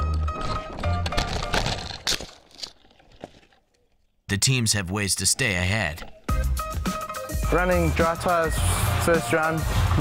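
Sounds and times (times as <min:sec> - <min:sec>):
bike crash knocks and clatters: 0:00.3 - 0:03.5
background music: 0:04.8 - 0:10.0.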